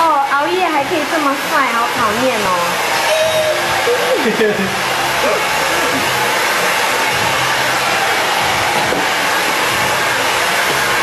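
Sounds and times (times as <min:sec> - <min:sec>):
hair dryer running: 0:00.0 - 0:11.0.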